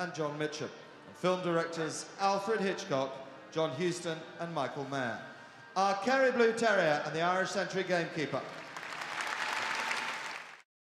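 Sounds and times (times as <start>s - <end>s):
arena audience applauding: 8.3s - 10.7s.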